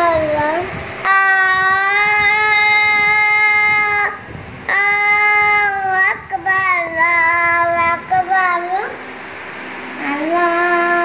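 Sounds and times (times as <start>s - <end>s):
boy chanting call to prayer: 0.0s - 9.0s, 10.0s - 11.0s.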